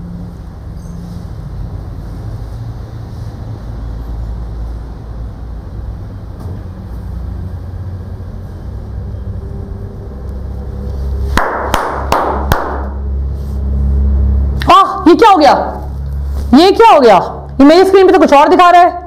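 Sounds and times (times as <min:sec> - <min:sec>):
low room hum: 0:00.0 - 0:19.0
sharp hand claps: 0:11.4 - 0:13.0.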